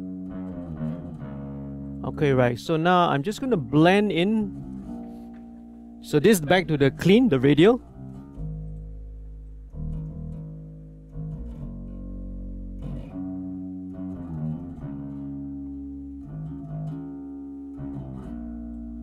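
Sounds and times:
electric bass guitar notes: 0:00.0 - 0:19.0.

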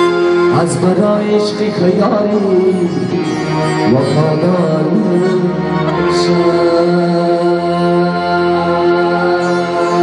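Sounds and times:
instrumental accompaniment: 0:00.0 - 0:10.0
man singing long notes: 0:00.0 - 0:10.0.

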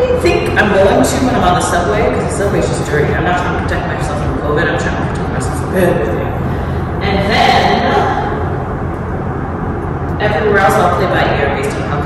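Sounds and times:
low rumbling room noise: 0:00.0 - 0:12.0.

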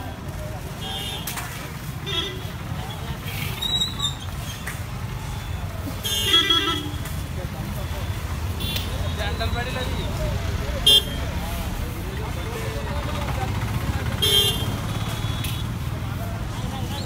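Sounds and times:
faint voices: 0:00.0 - 0:17.0
traffic rumble: 0:00.0 - 0:17.0.

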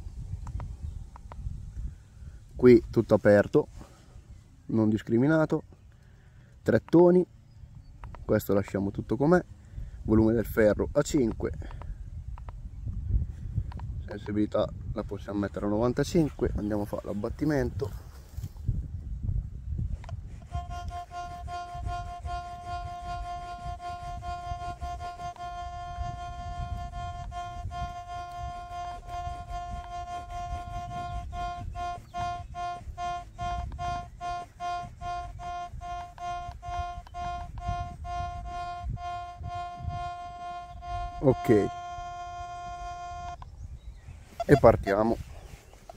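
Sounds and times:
metal detector electronic tone: 0:20.4 - 0:43.4, 0:44.4 - 0:45.1.

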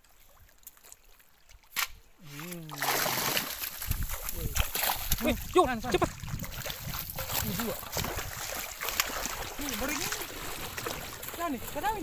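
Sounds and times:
splashes of running in water: 0:00.0 - 0:12.0.

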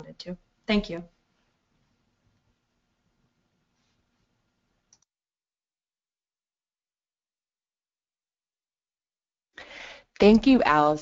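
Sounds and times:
faint microphone hiss: 0:00.0 - 0:05.1.

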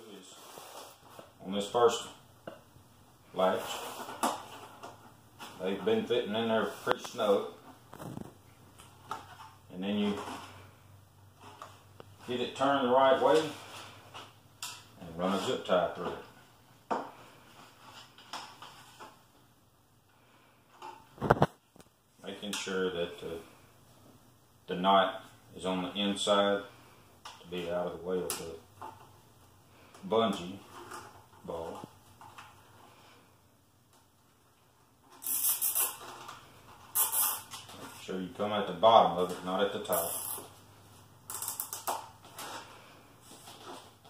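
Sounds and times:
hard plastic scraping rustles: 0:03.4 - 0:10.7.

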